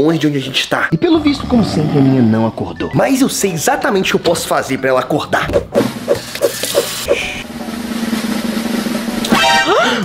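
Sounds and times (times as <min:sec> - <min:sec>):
fast snare drum roll: 0:07.8 - 0:09.2.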